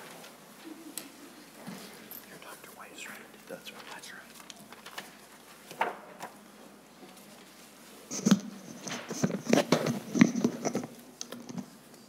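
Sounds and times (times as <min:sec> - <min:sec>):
faint voices talking quietly: 0:00.6 - 0:04.5.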